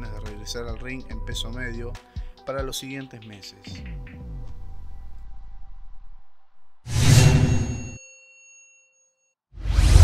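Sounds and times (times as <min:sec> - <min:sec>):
metallic ding: 0:07.0 - 0:09.2.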